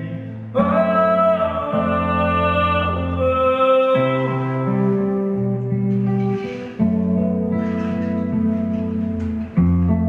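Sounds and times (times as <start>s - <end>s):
guitar playing chords: 0.0s - 10.0s.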